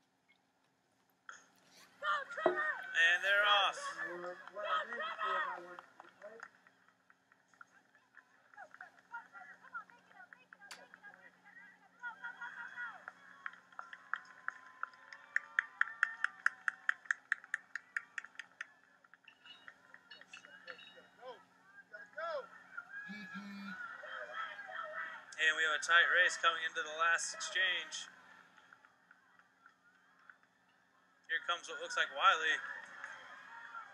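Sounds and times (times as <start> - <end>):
distant spectators shouting: 2.0 - 6.6, 19.5 - 30.4, 31.9 - 33.9.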